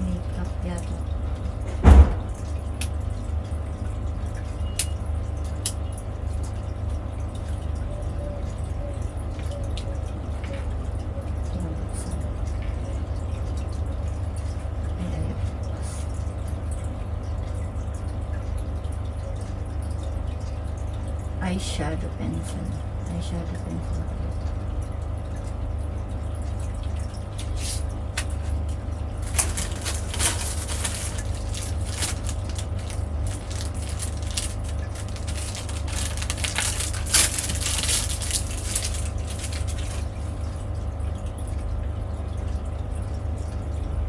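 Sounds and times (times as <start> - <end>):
steady low hum: 0.0 - 44.0
plastic bag crinkling: 29.2 - 40.4.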